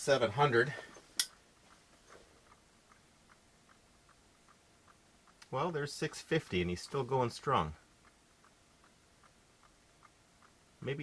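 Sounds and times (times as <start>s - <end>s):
toy ticking faintly: 2.4s - 11.0s.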